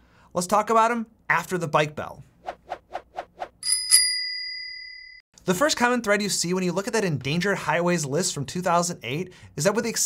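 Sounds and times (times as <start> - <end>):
bicycle bell ringing: 3.6 - 5.2.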